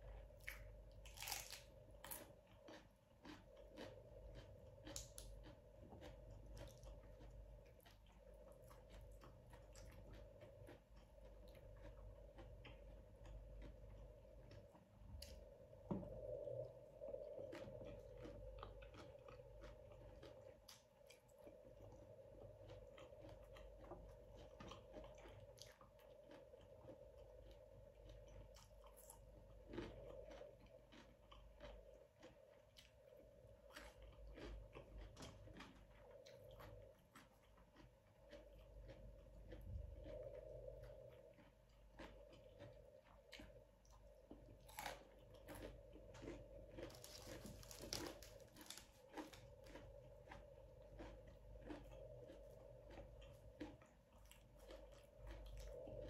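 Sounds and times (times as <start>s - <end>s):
close-up chewing: 0.0s - 56.0s
food crunching: 0.0s - 56.0s.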